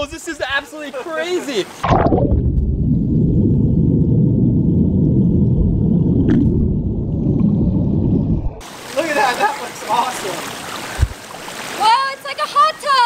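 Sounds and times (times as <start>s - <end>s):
muffled underwater bubbling: 1.8s - 8.6s.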